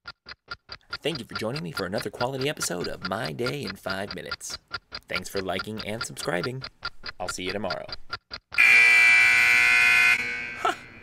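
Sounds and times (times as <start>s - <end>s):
timer buzzer: 8.6s - 11.0s.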